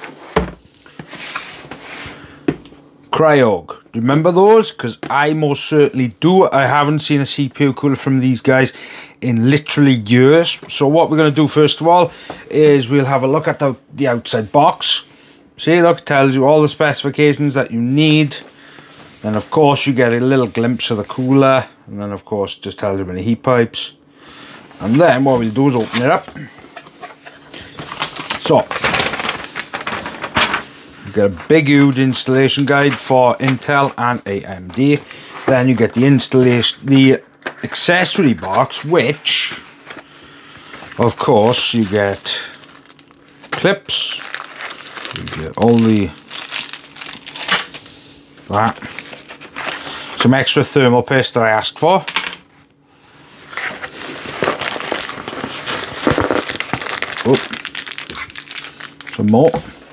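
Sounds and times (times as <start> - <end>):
plastic bags crinkling: 24.8 - 33.8, 39.4 - 50.4, 53.5 - 59.9
paper rustling and crackling: 24.8 - 36.6, 38.3 - 50.4, 53.4 - 59.9.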